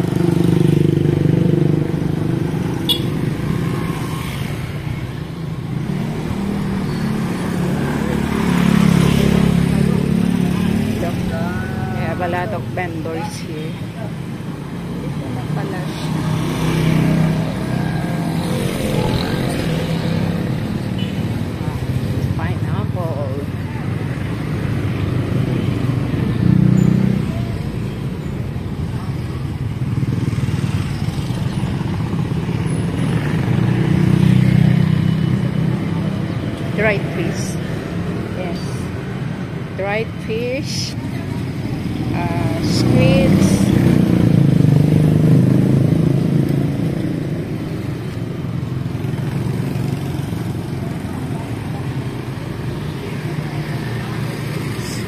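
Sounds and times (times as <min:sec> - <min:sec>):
street traffic: 0:00.0 - 0:55.0
voices: 0:05.2 - 0:24.6, 0:35.4 - 0:46.5.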